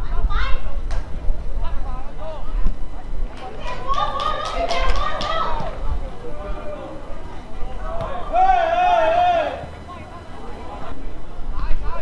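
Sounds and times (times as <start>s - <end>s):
people shouting: 3.5s - 9.7s.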